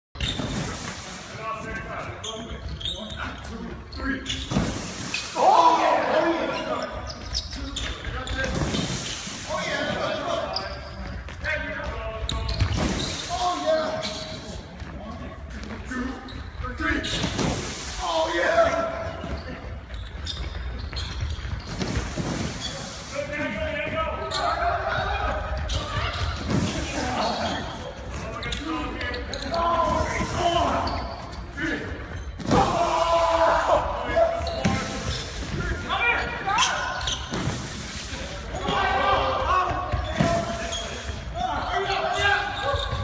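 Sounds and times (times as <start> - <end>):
sneakers squeaking on wooden floor: 0.2 - 1.0, 1.6 - 5.4, 6.3 - 17.8, 18.6 - 32.8, 34.1 - 43.0
players shouting: 5.3 - 6.8, 32.5 - 34.9.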